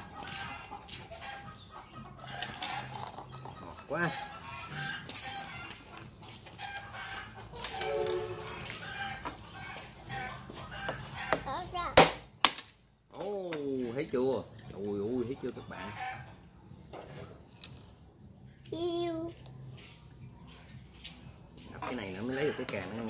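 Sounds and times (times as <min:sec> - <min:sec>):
chickens clucking: 0:00.0 - 0:11.8, 0:13.2 - 0:23.0.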